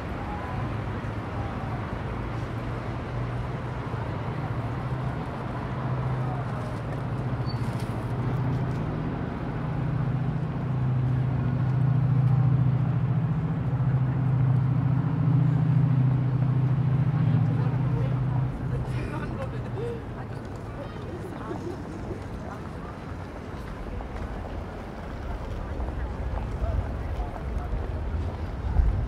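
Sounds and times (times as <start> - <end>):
heavy vehicle engine running: 0.0 - 29.0
street traffic: 0.0 - 29.0.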